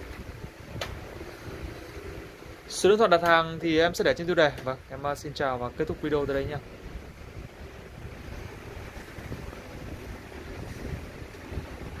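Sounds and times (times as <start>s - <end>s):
low uneven rumbling: 0.0s - 12.0s.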